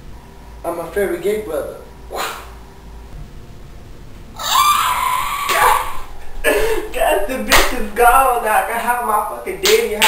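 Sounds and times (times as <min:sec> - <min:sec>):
person screaming: 0:04.4 - 0:06.1.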